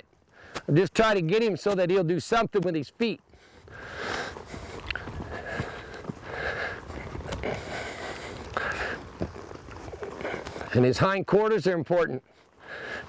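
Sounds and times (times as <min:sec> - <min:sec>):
outdoor rustle: 0:00.0 - 0:13.0.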